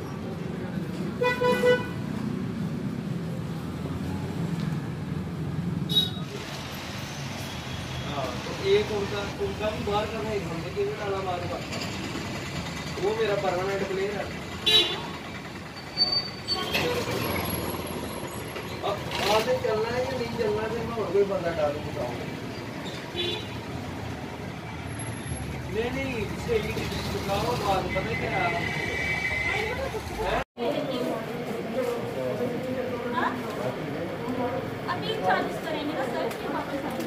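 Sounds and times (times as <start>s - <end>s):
street background noise: 0.0s - 37.0s.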